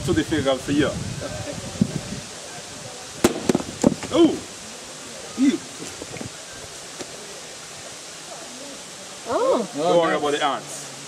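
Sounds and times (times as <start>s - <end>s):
outdoor background hiss: 0.0s - 11.0s
coconut set down on rock: 3.2s - 4.2s, 7.0s - 7.2s.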